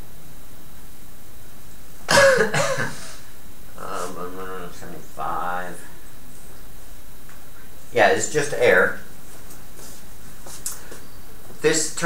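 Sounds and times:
man clearing his throat: 0:02.1 - 0:03.2.

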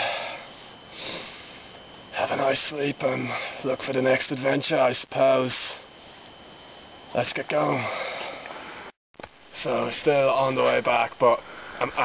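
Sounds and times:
man breathing: 0:00.0 - 0:01.8, 0:03.2 - 0:03.7, 0:07.7 - 0:08.9, 0:11.4 - 0:12.0.

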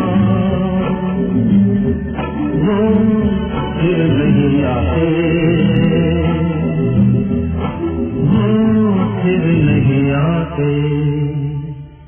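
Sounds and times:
film song with singing: 0:00.0 - 0:12.0.

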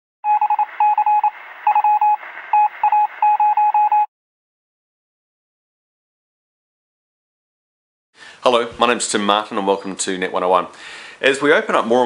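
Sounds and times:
morse code beeps: 0:00.2 - 0:04.1
radio hiss: 0:00.6 - 0:03.4.

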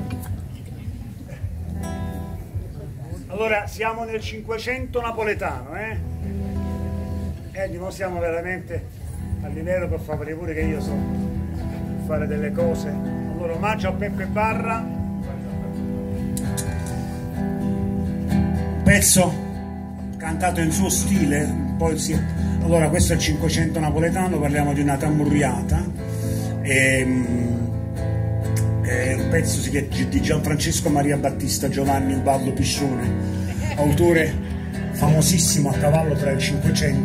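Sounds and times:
acoustic guitar strummed: 0:01.4 - 0:02.8, 0:04.9 - 0:37.0.

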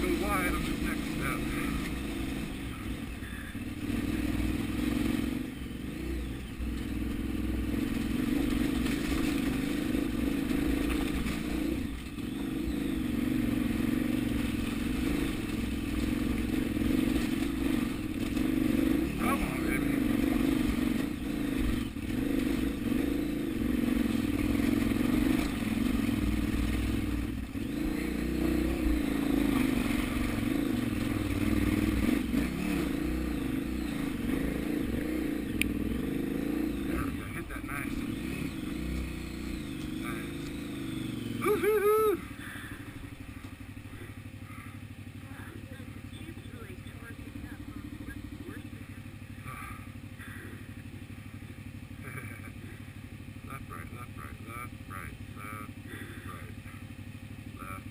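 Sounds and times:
motorcycle engine at low revs: 0:00.0 - 0:57.9.

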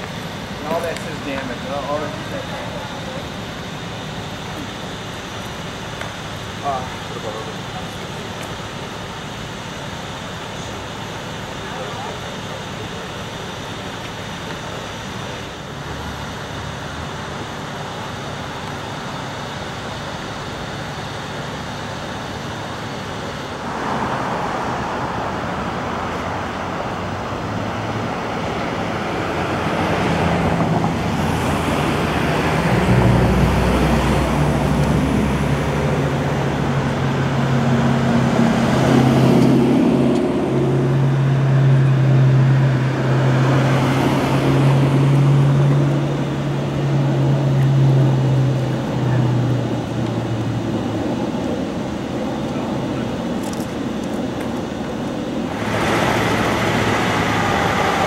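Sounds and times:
low engine hum: 0:00.0 - 0:58.0
road traffic going by: 0:00.0 - 0:58.0.

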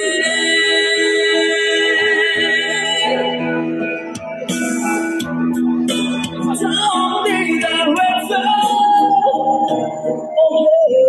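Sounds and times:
person singing pop song: 0:00.0 - 0:11.0.

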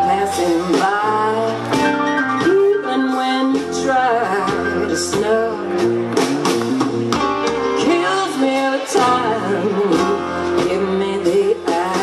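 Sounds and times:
person singing: 0:00.0 - 0:06.5, 0:07.6 - 0:12.0
electric guitar: 0:00.0 - 0:12.0
live blues band playing: 0:00.0 - 0:12.0.

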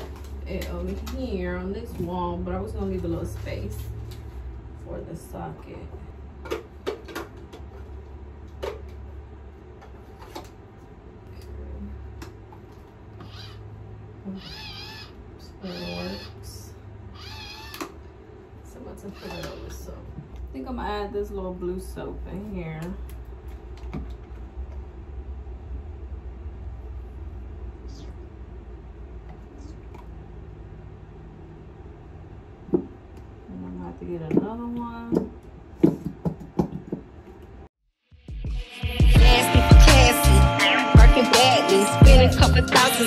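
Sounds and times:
cat meowing: 0:14.3 - 0:16.3, 0:17.1 - 0:17.9
loud hip-hop music: 0:38.3 - 0:43.0.

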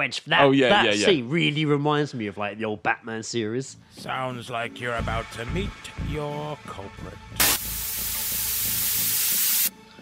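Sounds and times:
quiet background music: 0:00.0 - 0:10.0
loud even static hiss: 0:07.4 - 0:09.7.

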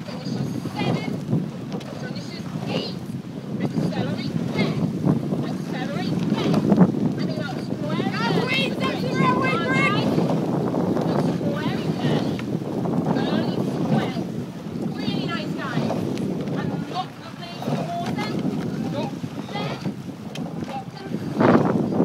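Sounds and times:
wind buffeting microphone: 0:00.0 - 0:22.0
people shouting: 0:07.9 - 0:10.3, 0:16.6 - 0:19.9.

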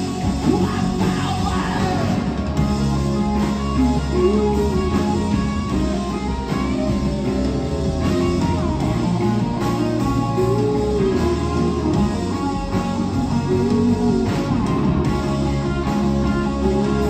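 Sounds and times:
live rock band playing: 0:00.0 - 0:17.0
sliding electric guitar notes: 0:00.0 - 0:17.0.

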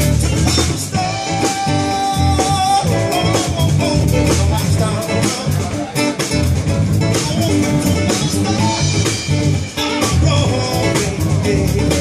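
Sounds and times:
bass and drum beat: 0:00.0 - 0:12.0
electric guitar melody: 0:00.0 - 0:12.0.

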